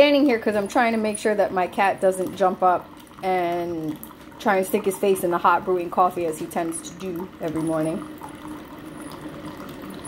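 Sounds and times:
coffee maker humming: 0.0 - 10.0
coffee pouring into mug: 0.0 - 10.0.

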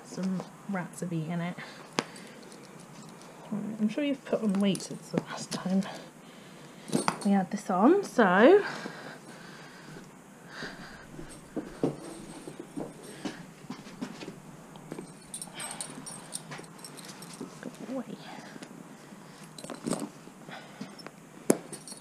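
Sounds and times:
leather and buckles clicking: 1.9 - 3.4, 11.1 - 18.0, 19.4 - 20.2, 20.8 - 22.0.

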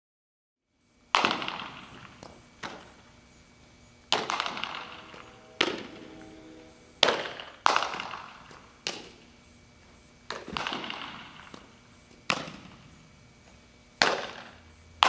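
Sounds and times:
softballs struck with sharp cracks: 1.2 - 2.9, 10.3 - 12.7, 14.0 - 14.5.

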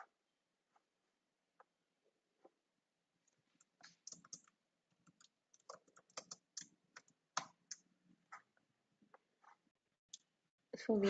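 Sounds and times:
computer keyboard typing: 3.6 - 7.9.

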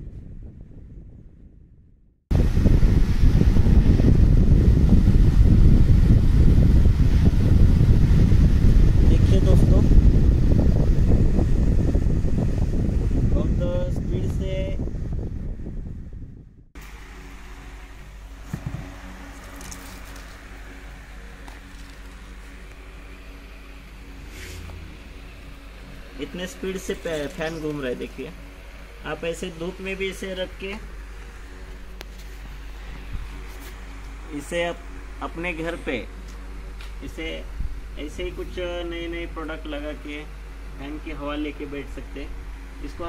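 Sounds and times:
fan airflow buffeting microphone: 0.0 - 43.0
fan humming: 2.3 - 43.0.

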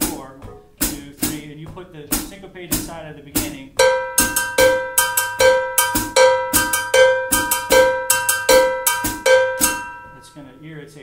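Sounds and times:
cowbell struck with drumstick: 2.1 - 10.6.

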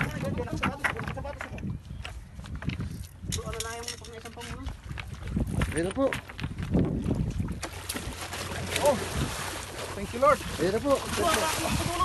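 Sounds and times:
wind buffeting microphone: 0.0 - 12.0
water splashing against rocks: 3.6 - 12.0
fish thrashing in water: 7.1 - 12.0.

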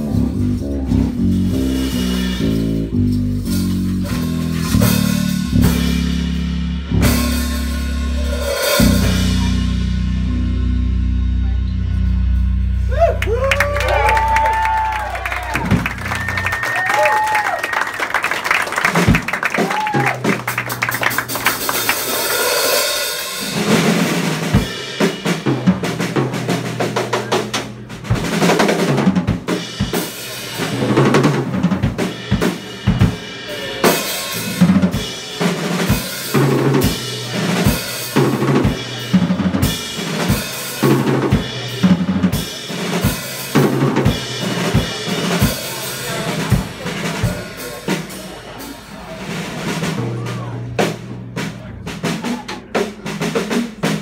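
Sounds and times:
electric bass notes: 0.0 - 17.6, 18.8 - 52.3
drum kit fills and hits: 0.0 - 54.0.

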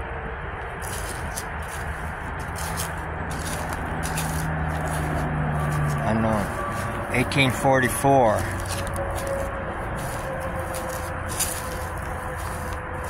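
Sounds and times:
steady low hum: 0.0 - 13.0
footsteps crunching dry leaves: 0.7 - 13.0.

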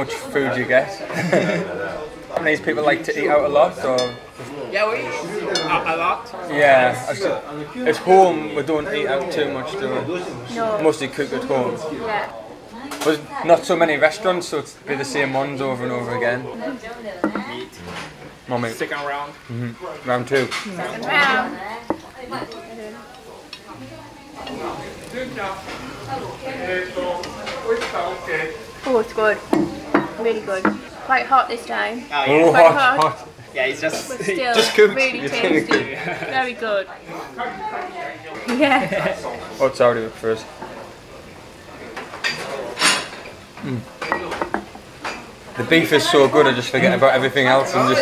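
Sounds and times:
chopsticks and ceramic bowls clinking: 3.9 - 4.4, 5.5 - 5.9
low voices: 19.2 - 32.1, 40.4 - 44.7
man humming mm of approval: 19.5 - 19.8, 43.6 - 44.0.

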